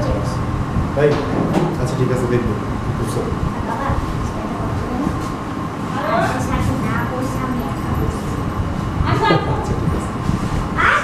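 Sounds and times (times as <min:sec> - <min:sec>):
steady low rumbling: 0:00.0 - 0:11.0.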